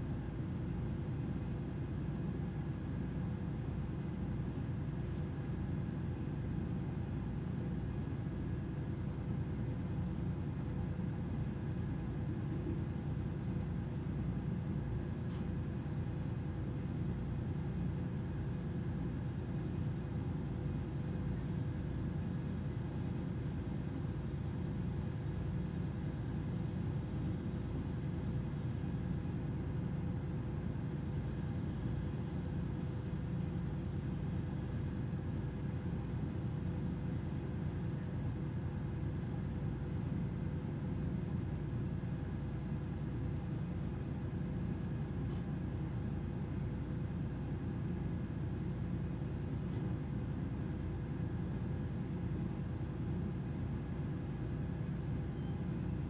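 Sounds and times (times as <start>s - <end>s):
ship machinery hum and rumble: 0.0s - 56.0s.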